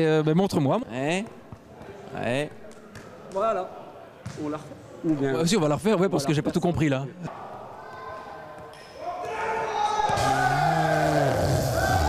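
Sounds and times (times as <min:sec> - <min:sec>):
ball bouncing in sports hall: 0:01.1 - 0:03.5, 0:04.2 - 0:04.6.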